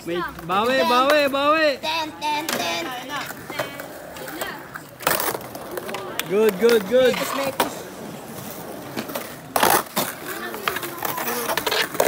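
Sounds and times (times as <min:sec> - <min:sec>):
skateboard smacking on concrete: 0:00.2 - 0:12.0.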